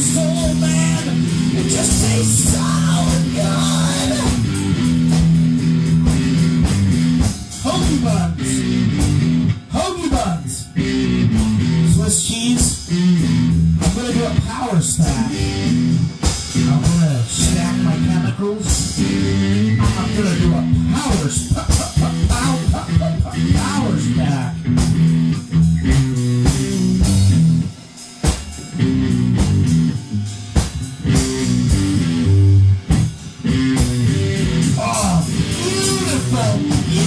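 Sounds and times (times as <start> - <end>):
drums: 0.0 - 37.0
rock band with guitar: 0.0 - 37.0.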